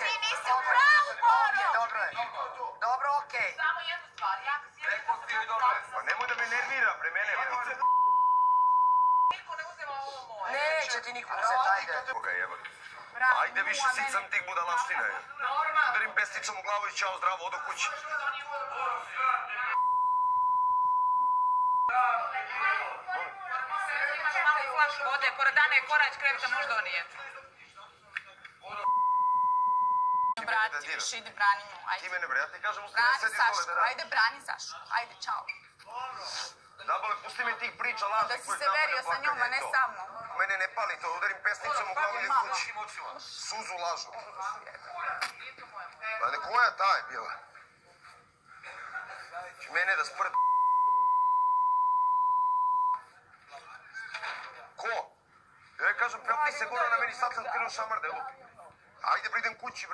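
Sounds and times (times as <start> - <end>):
censor bleep tone: 7.8 - 9.4, 19.8 - 22.0, 28.8 - 30.4, 50.4 - 53.0.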